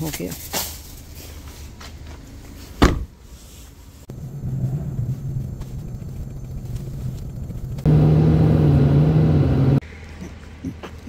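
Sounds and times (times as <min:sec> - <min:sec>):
car engine idling: 0:04.1 - 0:09.8.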